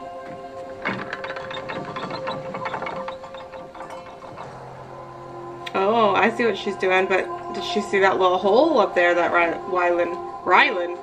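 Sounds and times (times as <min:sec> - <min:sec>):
held music tone: 0:00.0 - 0:11.0
rapid fine ticking: 0:00.1 - 0:10.4.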